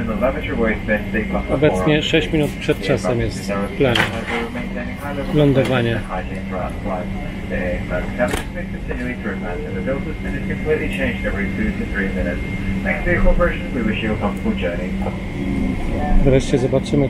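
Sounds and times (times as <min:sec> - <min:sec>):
cabin air system hum: 0:00.0 - 0:17.0
indistinct talking: 0:00.0 - 0:17.0.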